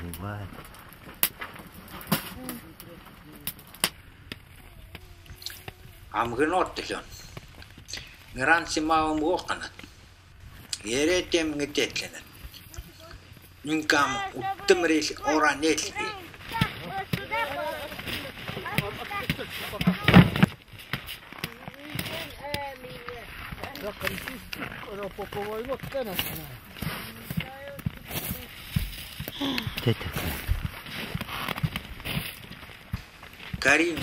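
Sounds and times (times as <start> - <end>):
people talking: 12.8 - 20.5, 21.5 - 28.5.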